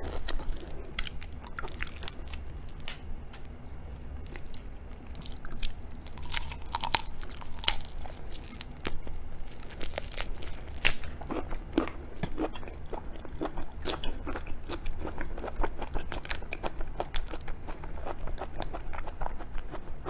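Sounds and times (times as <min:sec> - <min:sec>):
wet chewing: 0:00.0 - 0:19.9
prawn shell cracking: 0:05.2 - 0:11.1.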